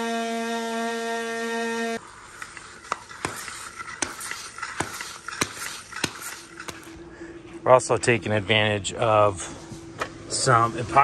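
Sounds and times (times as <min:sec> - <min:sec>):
light scraping hiss: 0:02.0 - 0:07.0
plastic reel knocking: 0:02.3 - 0:06.9.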